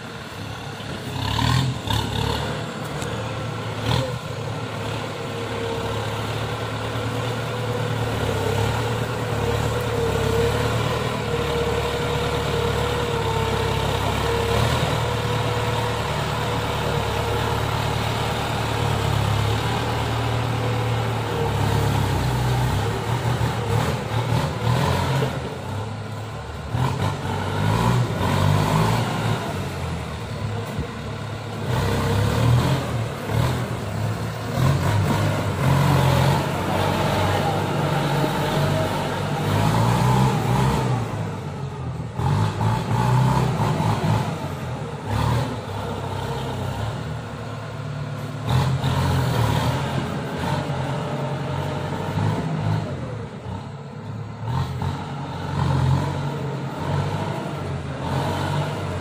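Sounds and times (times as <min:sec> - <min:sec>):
tractor diesel engine under load: 0:00.0 - 0:59.0.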